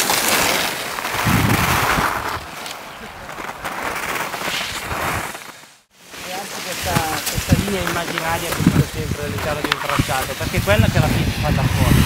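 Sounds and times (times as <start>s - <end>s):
skis scraping on snow: 0.0s - 12.0s.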